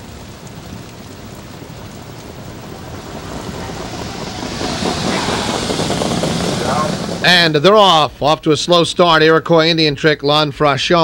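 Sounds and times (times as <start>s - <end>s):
rumbling of trotting horses and sulkies: 0.0s - 9.6s.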